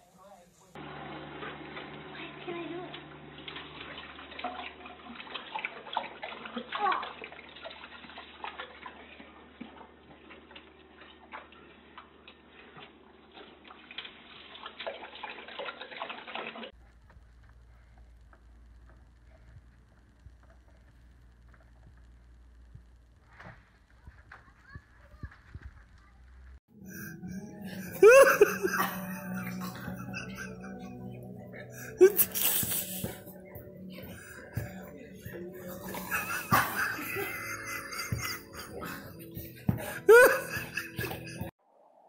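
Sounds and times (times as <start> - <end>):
water running in sink: 0.7 - 16.8, 27.8 - 41.5
room hum: 16.8 - 41.5.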